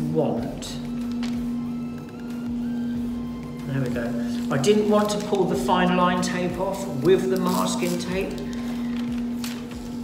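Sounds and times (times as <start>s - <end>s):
background music: 0.0s - 10.0s
masking tape peeling: 0.8s - 10.0s.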